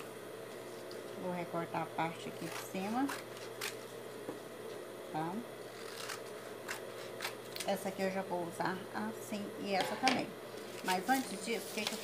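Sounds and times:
scissors snipping paper: 5.8 - 7.8.

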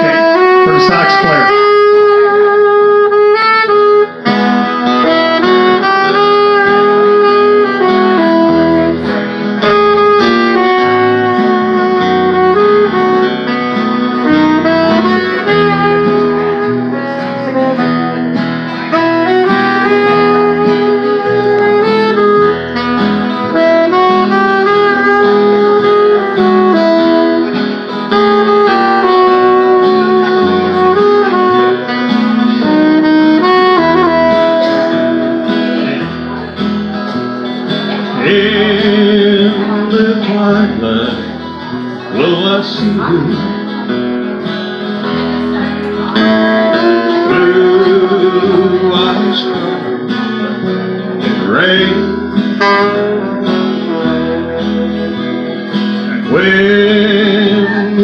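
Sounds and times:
electric bass: 0.0 - 43.8, 45.0 - 58.0
saxophone melody: 0.0 - 58.0
strummed acoustic guitar: 0.0 - 58.0.

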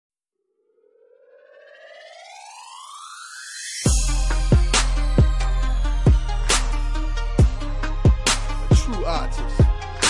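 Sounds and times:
siren-like rising riser tone: 0.5 - 5.6.

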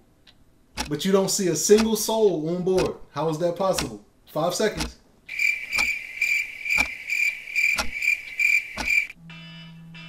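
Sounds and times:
sharp ticks: 0.3 - 1.0, 1.7 - 2.0, 3.7 - 4.0, 4.8 - 9.2.

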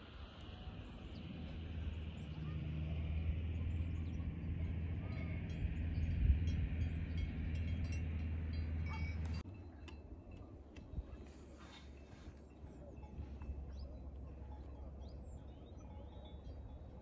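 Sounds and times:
distant cowbells clinking: 0.2 - 17.0
wind rumbling on microphone: 3.2 - 14.5.

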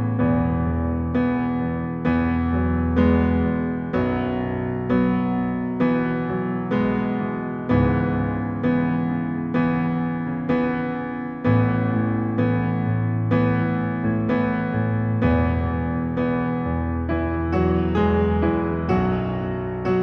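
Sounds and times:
piano bass octaves: 0.0 - 20.0
piano chords ringing: 0.0 - 20.0.

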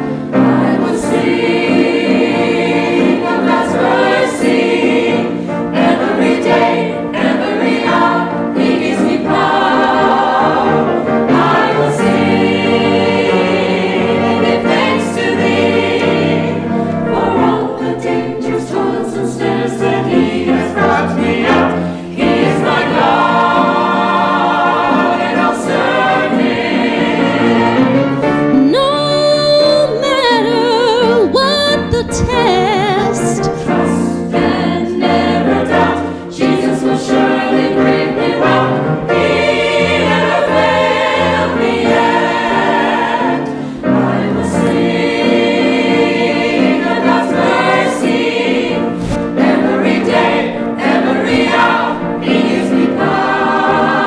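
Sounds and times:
choir singing gospel song: 0.0 - 54.0.

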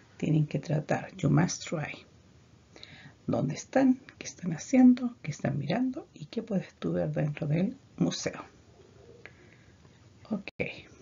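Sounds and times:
person speaking: 0.0 - 2.1.

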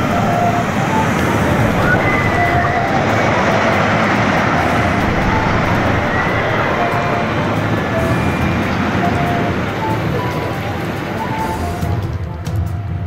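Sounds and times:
faint squeals: 0.0 - 12.0
roller coaster rumbling on track: 0.0 - 13.0.

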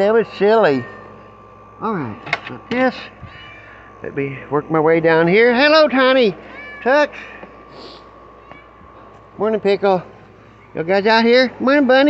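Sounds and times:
faint high cries: 3.1 - 4.0, 6.4 - 7.4
cat meowing: 3.2 - 3.8, 6.5 - 6.9.

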